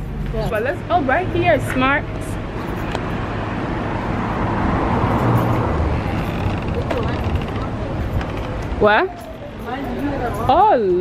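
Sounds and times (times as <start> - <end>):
car driving past: 2.4 - 8.8.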